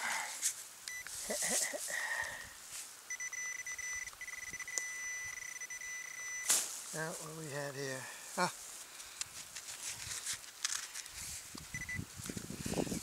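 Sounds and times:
rustling in grass: 0:00.0 - 0:03.1, 0:06.2 - 0:13.0
metal detector beeping: 0:00.9 - 0:01.1, 0:03.1 - 0:06.6, 0:11.7 - 0:12.0.

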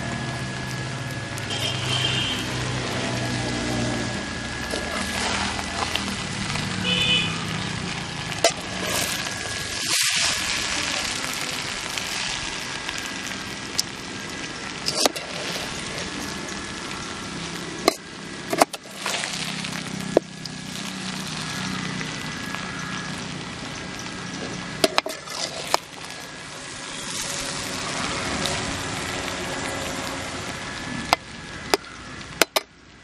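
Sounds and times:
rice scraping in metal pot: 0:04.6 - 0:06.3, 0:08.3 - 0:11.2, 0:14.8 - 0:16.4, 0:17.9 - 0:19.5, 0:24.8 - 0:26.4.

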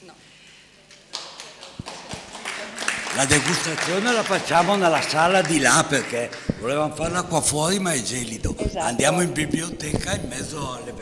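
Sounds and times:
hands clapping: 0:00.9 - 0:07.2.

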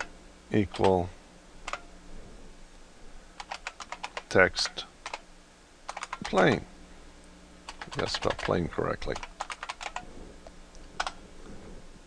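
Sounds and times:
computer keyboard typing: 0:03.4 - 0:04.4, 0:05.0 - 0:05.2, 0:05.9 - 0:06.6, 0:07.7 - 0:10.1.

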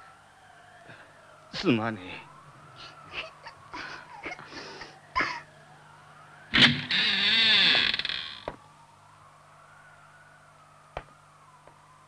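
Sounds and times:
girl sobbing: 0:03.1 - 0:05.5.

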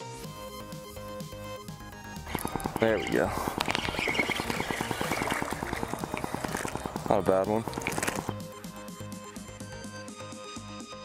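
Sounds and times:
fishing reel ticking: 0:02.2 - 0:08.4
fish splashing at surface: 0:02.3 - 0:08.4.

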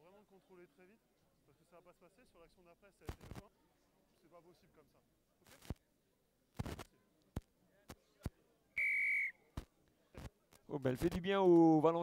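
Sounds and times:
referee's whistle blast: 0:08.8 - 0:09.4.

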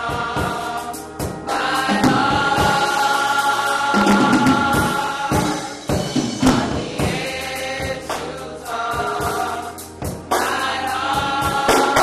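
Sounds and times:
gospel choir singing: 0:00.0 - 0:12.0
sharp percussive hits: 0:04.0 - 0:07.3.

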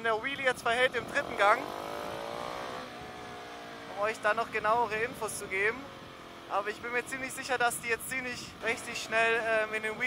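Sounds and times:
motorcycle engine accelerating: 0:00.4 - 0:07.3.

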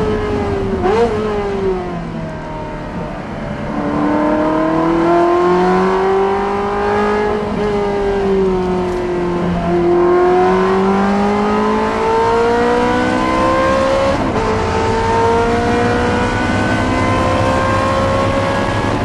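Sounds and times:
race car engine accelerating: 0:00.0 - 0:19.0.

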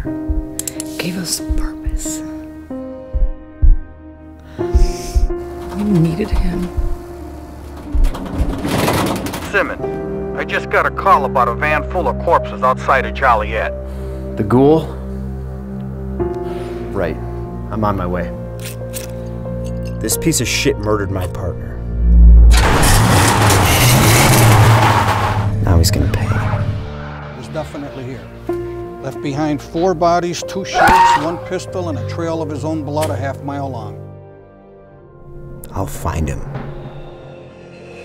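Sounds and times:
deep thuds: 0:00.0 - 0:00.6, 0:03.0 - 0:04.0, 0:04.7 - 0:09.4
low steady drone: 0:21.6 - 0:24.5
car engine revving: 0:21.8 - 0:27.3
rising whoosh: 0:21.8 - 0:27.6
tyre and road noise: 0:22.4 - 0:26.8.

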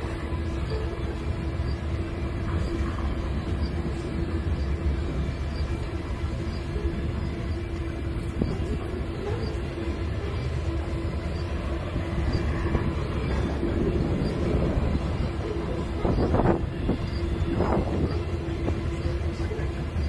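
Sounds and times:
freight train wheels rumbling: 0:00.0 - 0:20.0.

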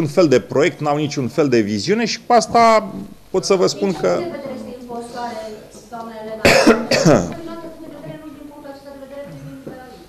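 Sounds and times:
man coughing: 0:06.4 - 0:07.4.

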